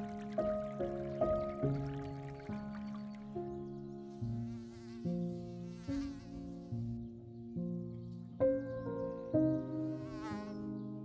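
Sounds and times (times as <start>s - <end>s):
wavering buzzing texture: 4.0s - 7.0s, 9.8s - 10.7s.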